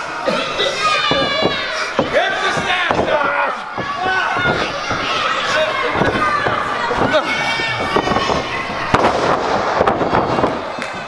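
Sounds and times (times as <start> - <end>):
small crowd noise: 0.0 - 11.0.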